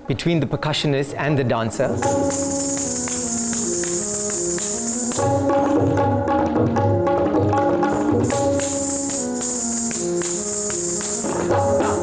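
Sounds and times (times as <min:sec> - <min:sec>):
melodic accompaniment of held notes: 0:00.0 - 0:12.0
ankle bells jingling: 0:01.8 - 0:05.5.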